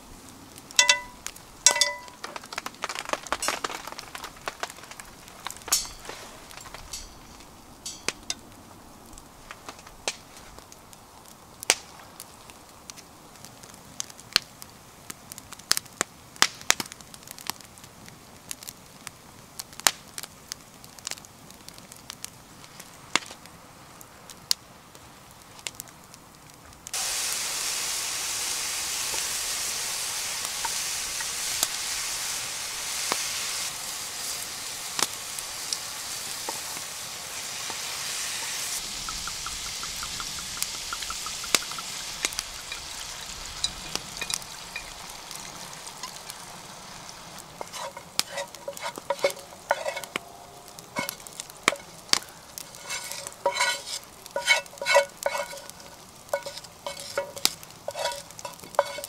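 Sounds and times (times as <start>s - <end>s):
bacon sizzling in frying pan: 0.0s - 8.6s, 26.9s - 50.2s, 50.8s - 59.0s
wooden spatula scraping pan: 47.6s - 50.2s, 51.0s - 51.9s, 52.6s - 59.0s.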